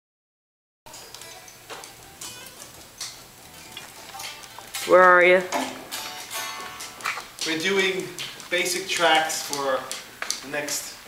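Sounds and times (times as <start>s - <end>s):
soft electric guitar notes: 0.9s - 7.4s
guitar string and handling noise: 0.9s - 10.5s.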